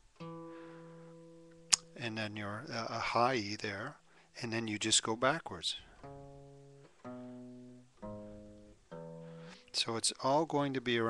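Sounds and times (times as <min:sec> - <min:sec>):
acoustic guitar note: 0:00.0 - 0:11.0.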